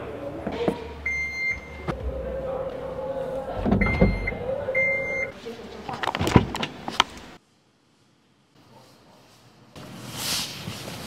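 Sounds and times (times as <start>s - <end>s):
high warning beep: 1.1s - 5.3s
trunk lid click: 3.5s - 4.4s.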